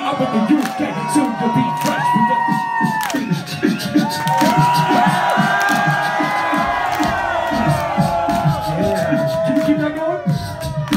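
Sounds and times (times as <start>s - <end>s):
crowd cheering and shouting: 0.0s - 10.9s
hip-hop backing music: 0.0s - 10.9s
person rapping: 0.0s - 10.9s.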